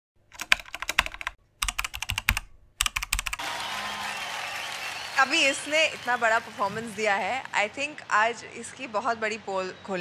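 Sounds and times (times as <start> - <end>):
keyboard key clicks: 0.3 - 3.4
crowd noise: 3.4 - 10.0.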